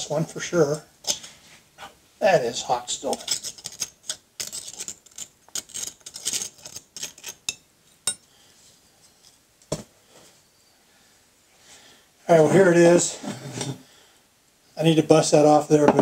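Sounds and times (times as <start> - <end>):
metal tools scraping metal: 3.0 - 8.2.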